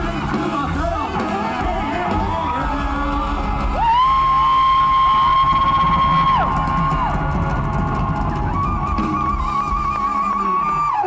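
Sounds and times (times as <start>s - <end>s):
crowd noise: 0.0s - 11.0s
rock band playing live: 0.0s - 11.0s.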